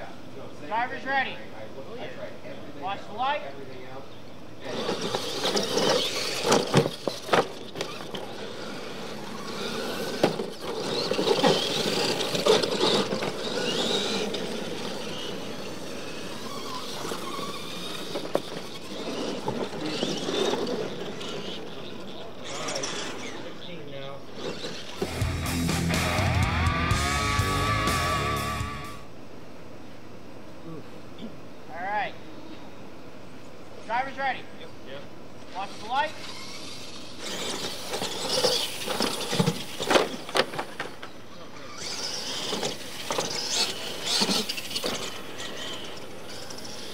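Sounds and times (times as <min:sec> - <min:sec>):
radio-controlled truck motors: 0:04.6 - 0:25.4, 0:35.4 - 0:46.9
music with heavy low beat: 0:25.0 - 0:29.0.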